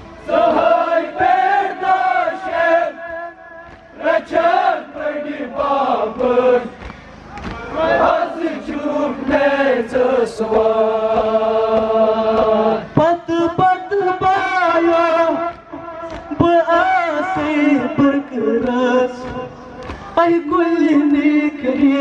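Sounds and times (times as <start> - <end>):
man chanting into a microphone: 12.0 - 22.0.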